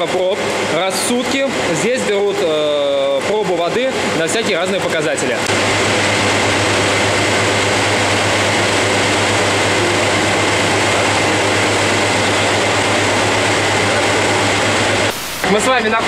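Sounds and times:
water pumps droning: 0.0s - 16.0s.

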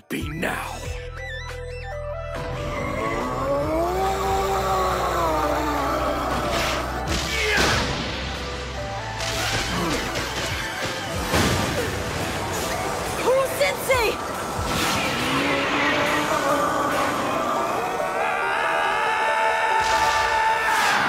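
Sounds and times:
dramatic battle music: 0.0s - 21.0s.

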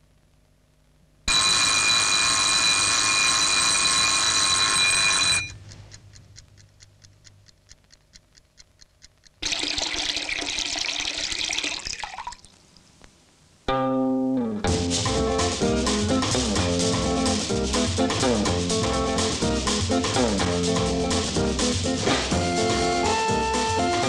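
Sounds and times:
alarm clock bell ringing: 1.3s - 5.5s
clock ticking: 4.4s - 10.6s, 15.1s - 24.0s
tap running water: 9.4s - 12.5s.

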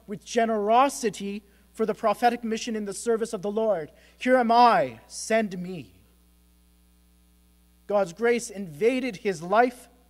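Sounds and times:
man's voice: 0.0s - 6.0s, 7.9s - 9.9s
faint mains hum: 0.0s - 10.0s.

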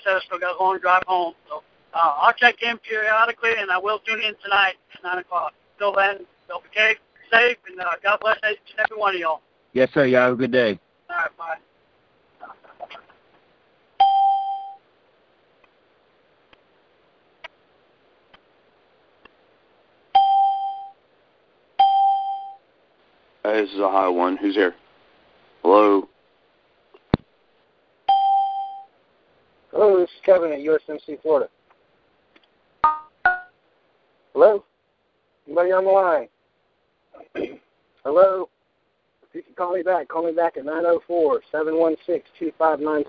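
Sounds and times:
electronic chime tone: 21.8s - 22.6s.

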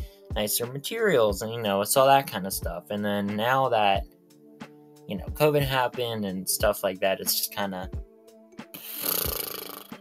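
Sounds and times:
soft guitar music: 0.0s - 9.9s
person blowing out breath: 8.7s - 10.0s.

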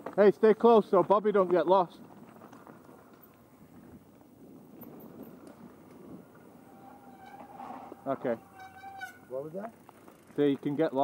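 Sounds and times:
bike tyres crunching on gravel: 0.0s - 11.0s.

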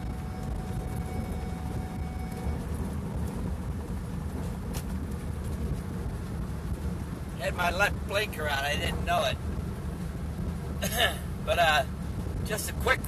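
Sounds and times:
vehicle cabin road noise: 0.0s - 13.0s.

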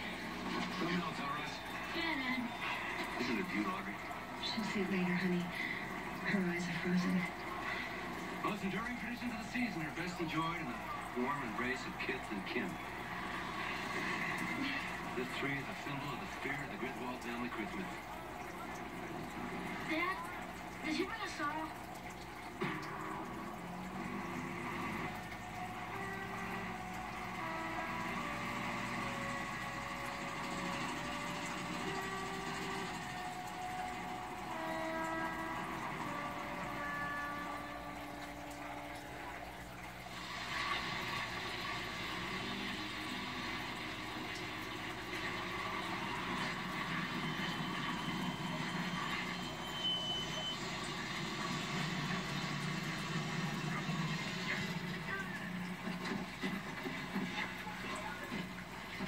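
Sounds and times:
rushing vehicle and road noise: 22.7s - 37.8s.

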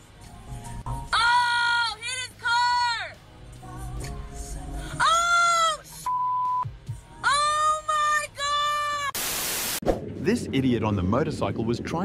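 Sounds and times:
short steady beep: 6.1s - 6.7s.

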